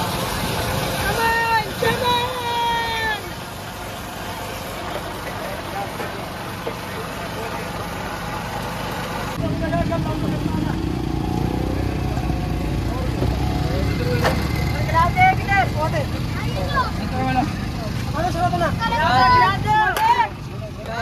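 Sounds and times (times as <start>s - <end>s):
low engine rumble: 0.0s - 21.0s
vehicle engines running: 0.0s - 21.0s.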